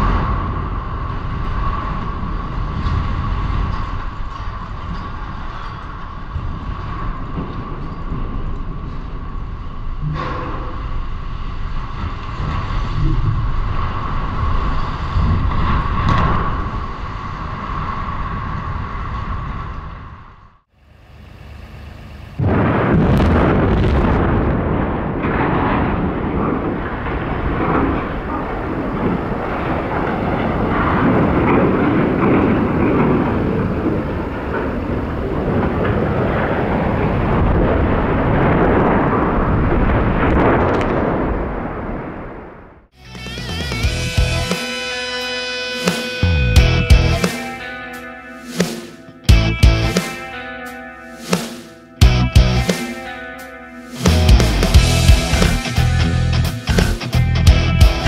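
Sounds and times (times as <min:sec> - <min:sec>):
demolition charges cracking: 0:00.0 - 0:19.7, 0:22.4 - 0:44.2
low rumble of chimney toppling: 0:21.1 - 0:42.8
explosive blast: 0:22.4 - 0:34.1, 0:54.0 - 0:58.0.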